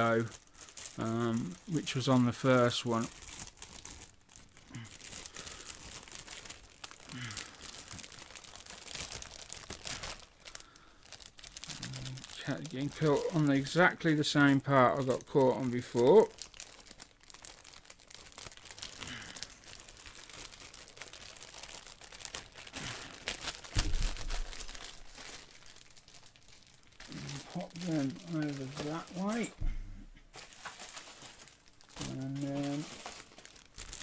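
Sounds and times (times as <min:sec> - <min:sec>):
plastic bag crinkling: 0:00.0 - 0:29.7, 0:30.3 - 0:34.0.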